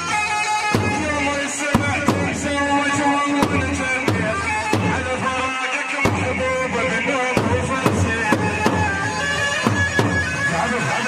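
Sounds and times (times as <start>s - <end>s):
bass drum strikes: 0.8s - 5.5s, 6.1s - 10.4s.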